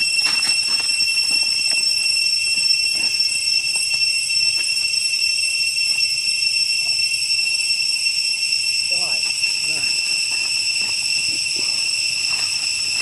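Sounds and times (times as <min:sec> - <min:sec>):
cicadas droning: 0:00.0 - 0:13.0.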